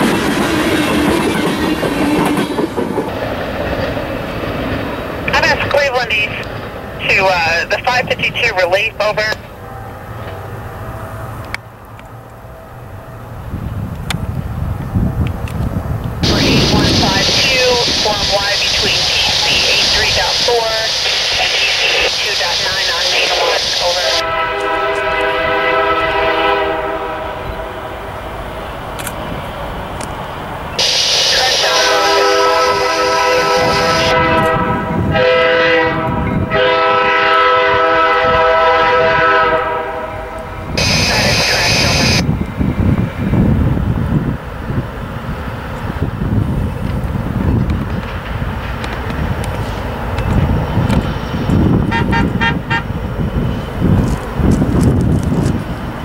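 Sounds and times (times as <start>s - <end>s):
locomotive air horn: 23.8s - 27.8s, 30.8s - 42.2s, 51.9s - 52.9s.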